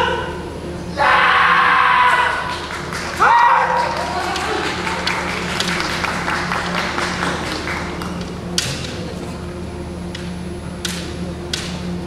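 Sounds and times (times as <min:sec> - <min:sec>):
loud drawn-out yell: 0:01.0 - 0:05.3.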